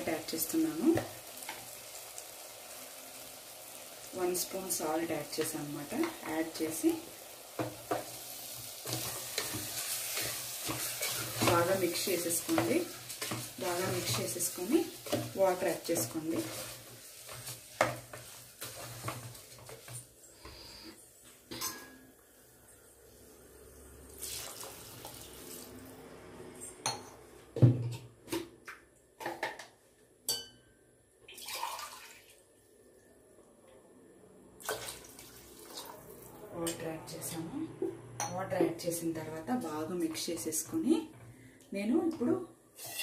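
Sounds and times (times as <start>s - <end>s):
water sloshing in a pot: 3.9s - 20.0s, 24.1s - 26.0s, 31.3s - 32.5s, 34.6s - 36.4s.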